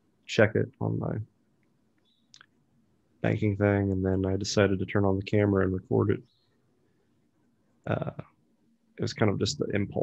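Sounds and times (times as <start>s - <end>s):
man speaking: 0.3s - 1.3s, 3.2s - 6.3s, 7.8s - 8.3s, 9.0s - 10.0s.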